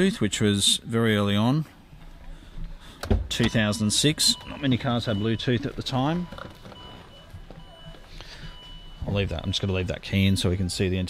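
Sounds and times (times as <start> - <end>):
car warning chime beeping: 3.3 - 10.2.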